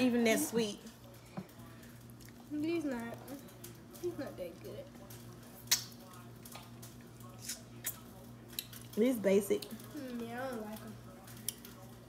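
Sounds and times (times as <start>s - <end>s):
steady low hum: 0.0s - 12.0s
eating clicks and smacks: 5.1s - 9.0s.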